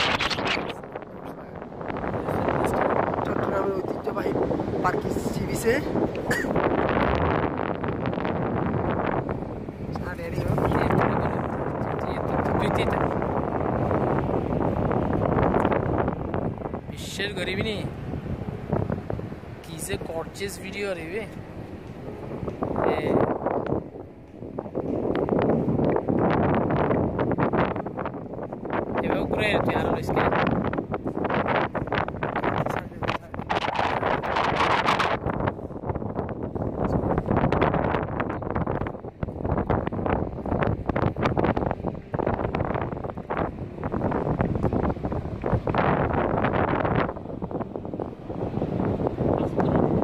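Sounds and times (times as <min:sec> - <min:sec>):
wind on microphone: 0:00.0 - 0:50.0.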